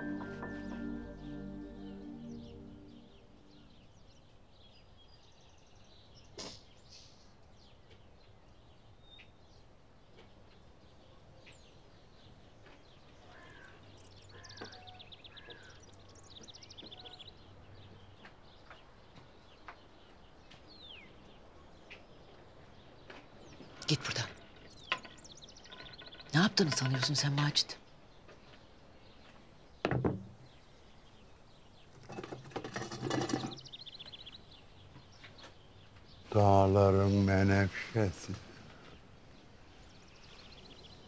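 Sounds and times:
clattering handling noise: 0:32.0 - 0:33.8.

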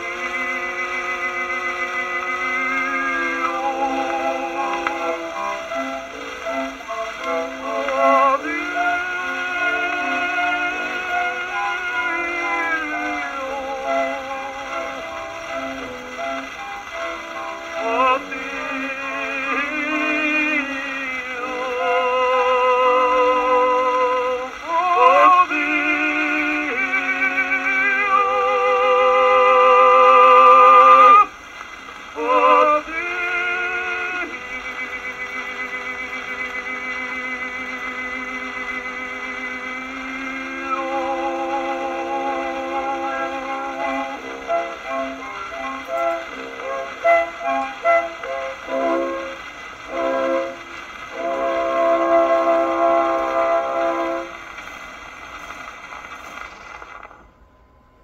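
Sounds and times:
orchestra playing: 0:00.0 - 0:31.3, 0:32.2 - 0:54.6
operatic duet singing: 0:00.0 - 0:31.4, 0:32.1 - 0:54.3
record surface hiss: 0:00.0 - 0:58.0.

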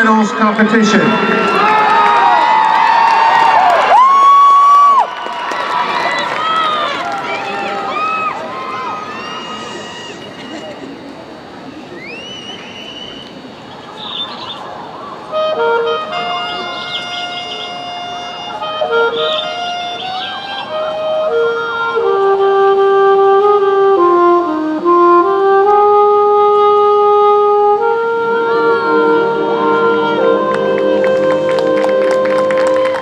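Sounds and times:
marching band woodwinds melody: 0:00.0 - 0:04.3, 0:06.2 - 0:33.0
rising whistle: 0:00.9 - 0:05.4, 0:06.1 - 0:10.9, 0:11.7 - 0:21.6
crowd murmur: 0:04.9 - 0:33.0.

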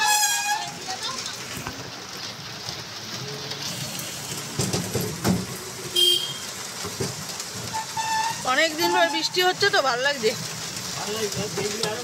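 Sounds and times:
rickshaw driving in rain: 0:00.0 - 0:12.0.

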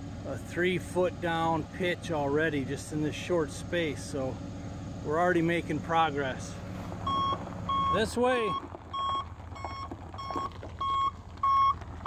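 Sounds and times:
truck engine running: 0:00.0 - 0:12.0
truck backup alarm beeping: 0:07.0 - 0:12.0.

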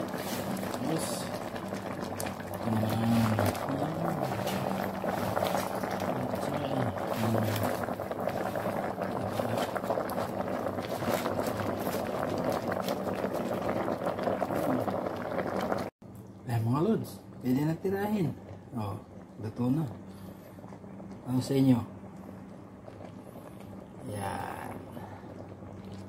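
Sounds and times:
broth boiling in a pot: 0:00.0 - 0:26.0.

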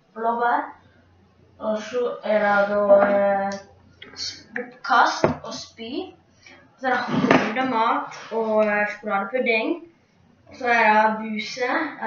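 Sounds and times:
boy talking: 0:00.2 - 0:00.7, 0:01.6 - 0:06.1, 0:06.8 - 0:09.8, 0:10.5 - 0:12.0.

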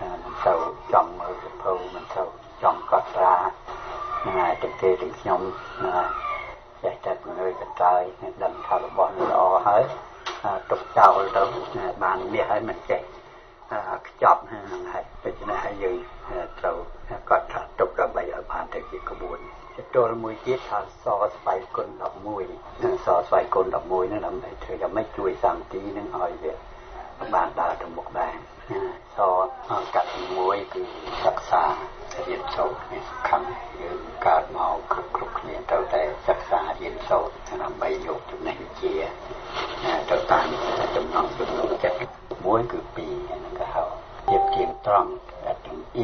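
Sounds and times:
radio news reader talking: 0:00.0 - 0:06.1, 0:06.8 - 0:26.6, 0:27.2 - 0:46.0.

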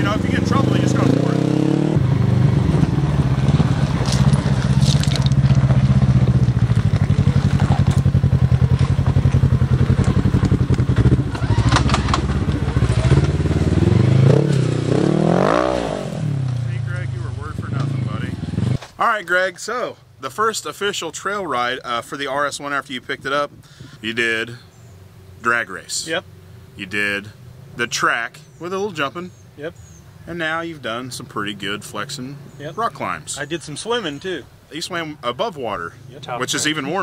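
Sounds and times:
engine running at low revs: 0:00.0 - 0:18.8.

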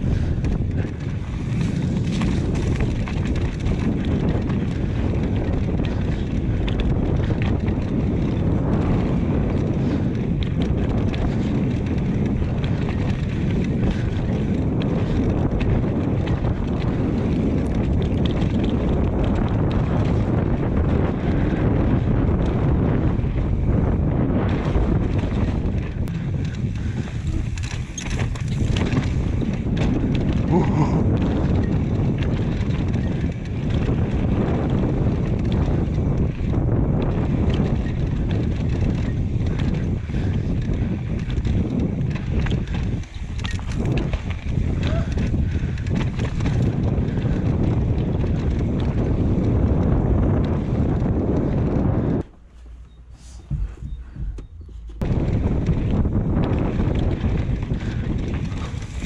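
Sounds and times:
bike knocks and rattles: 0:00.0 - 0:59.0
wind rush on microphone: 0:00.0 - 0:59.0
tyre rumble on dirt: 0:24.1 - 0:59.0.

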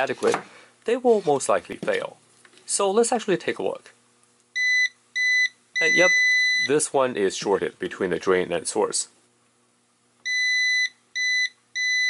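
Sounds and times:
multimeter continuity beep: 0:04.6 - 0:06.7, 0:10.2 - 0:12.0.

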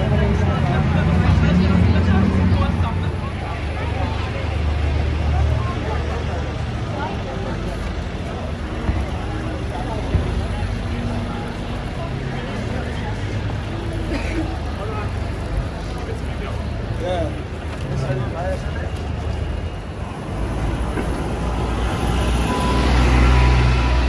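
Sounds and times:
passers-by talking: 0:00.0 - 0:24.0
road traffic rumble: 0:00.0 - 0:24.0.

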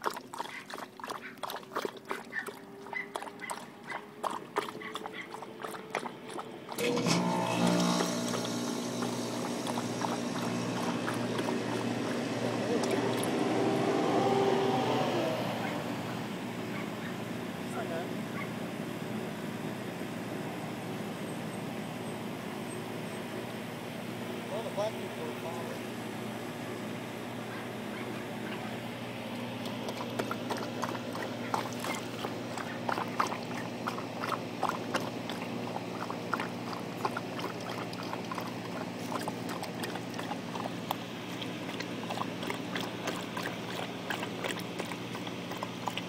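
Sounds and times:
dog lapping water: 0:00.0 - 0:16.0, 0:27.4 - 0:46.0
low mechanical hum: 0:00.0 - 0:46.0
steady droning: 0:06.8 - 0:17.5.

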